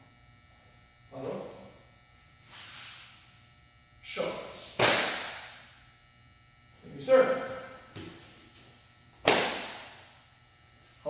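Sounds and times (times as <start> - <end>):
uniform swishing snaps: 4.7 - 5.4, 9.2 - 9.8.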